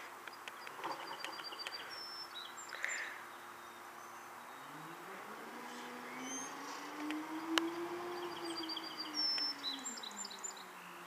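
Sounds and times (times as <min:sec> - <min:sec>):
birds chirping: 0:00.0 - 0:11.0
diesel truck pulling away: 0:03.6 - 0:10.9.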